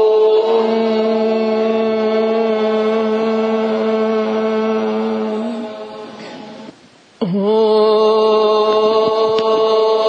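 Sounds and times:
voice chanting a held note: 0.0 - 10.0.

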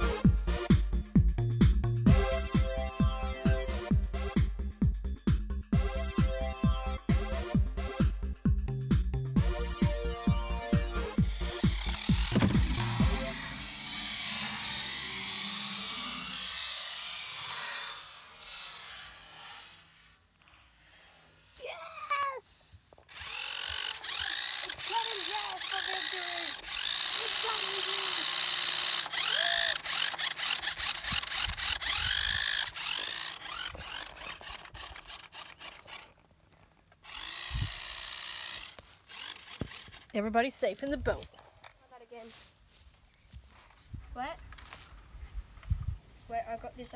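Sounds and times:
toy car motor whining: 0.0 - 0.2, 9.6 - 20.2, 22.9 - 40.6.

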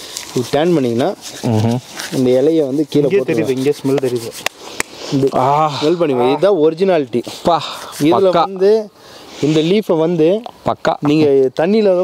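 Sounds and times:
hands rubbing leaves: 0.0 - 8.6
man talking: 0.3 - 4.4, 5.1 - 12.0.

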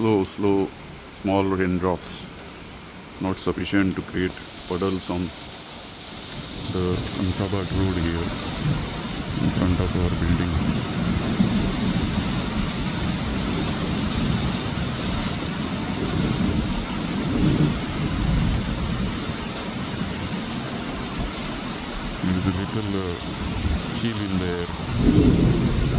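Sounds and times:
light rain falling: 0.0 - 25.9.

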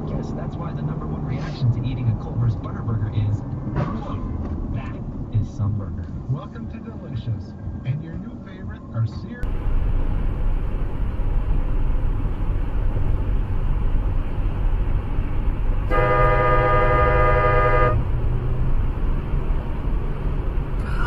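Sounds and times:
car road and engine rumble: 0.0 - 21.0
vehicle horn: 15.9 - 18.2.

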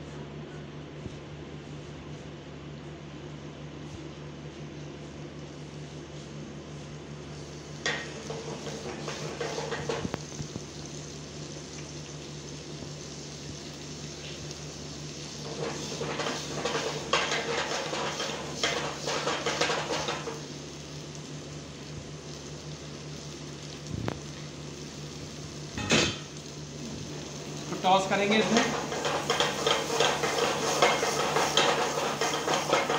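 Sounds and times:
potatoes frying in oil: 7.1 - 32.9
pan rattling and scraping on grate: 28.3 - 32.9.

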